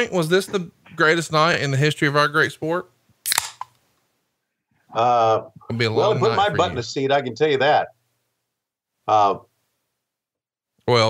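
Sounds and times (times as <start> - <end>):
man speaking: 4.9 - 7.9, 9.1 - 9.5.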